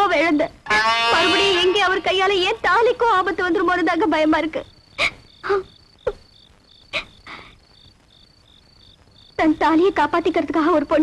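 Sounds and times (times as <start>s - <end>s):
crickets chirping: 0.0s - 11.0s.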